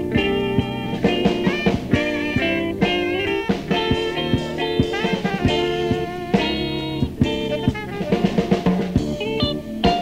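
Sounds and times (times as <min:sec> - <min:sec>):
jazz fusion band playing: 0:00.0 - 0:10.0
sharp drum hits: 0:00.1 - 0:09.2.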